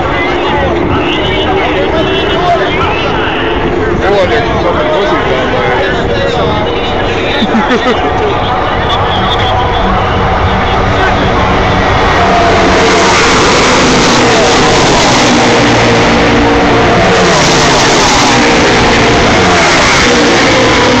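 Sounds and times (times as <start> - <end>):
race car engines at full speed: 0.0 - 21.0.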